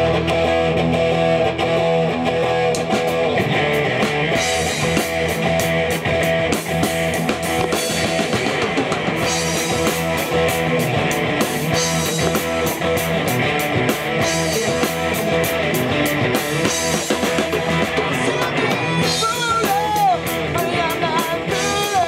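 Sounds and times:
bass guitar: 0.0s - 22.0s
electric guitars: 0.0s - 22.0s
drum kit with cymbals: 2.1s - 22.0s.

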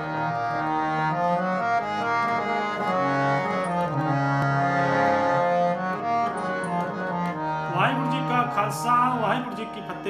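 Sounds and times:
harmonium melody: 0.0s - 10.0s.

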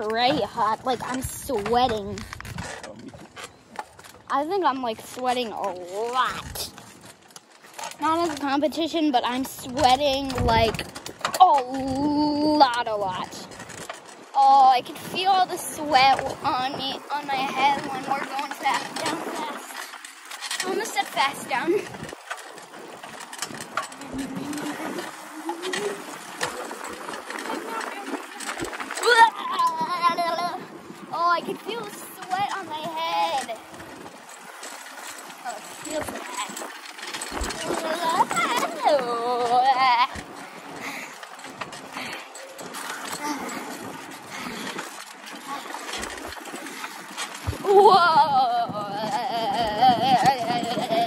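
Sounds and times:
wind rushing over microphone: 0.0s - 3.4s, 9.4s - 20.0s, 45.4s - 51.0s
child's high wavering voice: 29.0s - 33.6s, 37.6s - 40.2s, 47.6s - 51.0s.

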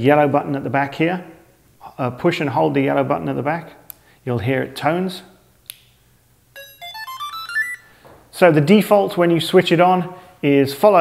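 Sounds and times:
rising electronic power-on beeps: 6.6s - 7.9s.

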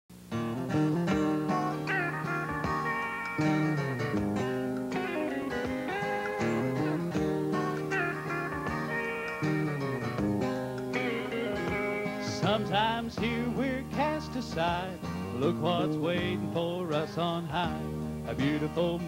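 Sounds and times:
bass: 0.1s - 19.0s
drums: 0.1s - 19.0s
sliding guitars: 0.3s - 19.0s.

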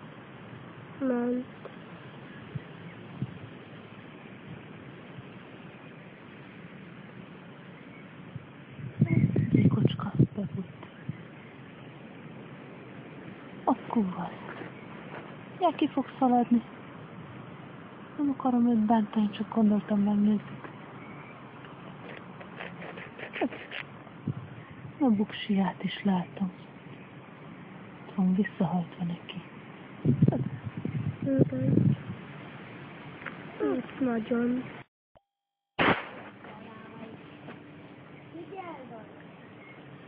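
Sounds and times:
outdoor background hiss: 0.0s - 34.9s, 35.8s - 40.0s
fingers scratching in soil and grass: 22.0s - 23.9s.

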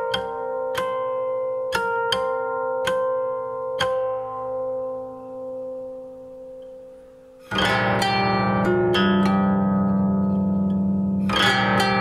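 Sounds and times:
zither notes ringing: 0.0s - 12.0s.

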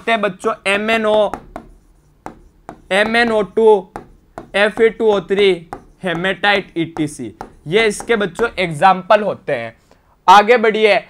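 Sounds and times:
man speaking: 0.0s - 1.4s, 2.8s - 11.0s
pen tapping on screen: 0.8s - 8.9s.

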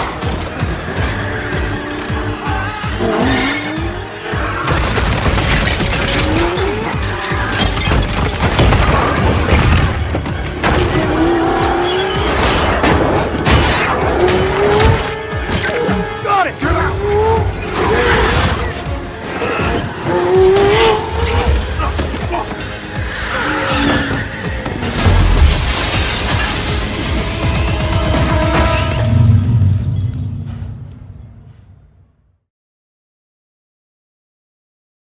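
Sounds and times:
tires squealing: 0.6s - 4.7s, 10.7s - 25.0s
debris scattering: 4.5s - 15.8s, 24.3s - 31.4s
ceramic statues smashing: 24.9s - 27.3s.

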